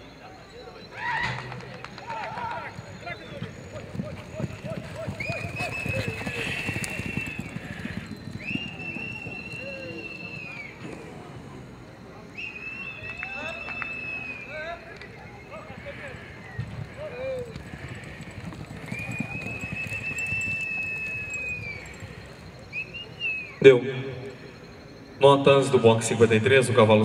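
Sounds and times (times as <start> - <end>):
horse hoofbeats on dirt: 1.4 - 11.2, 14.8 - 22.6.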